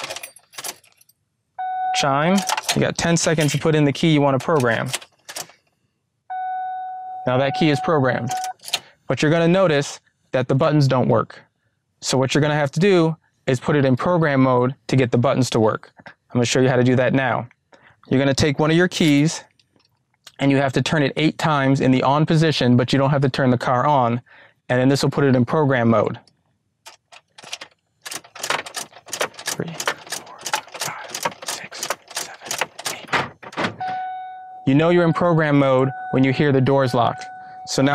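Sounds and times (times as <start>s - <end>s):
key ring jangling: 0.0s - 1.2s, 2.4s - 3.7s
dashboard chime: 1.6s - 2.6s, 6.3s - 8.6s, 33.8s - 37.9s
key clicking in ignition: 2.3s - 3.7s, 4.4s - 5.6s, 8.2s - 8.8s, 26.9s - 34.5s.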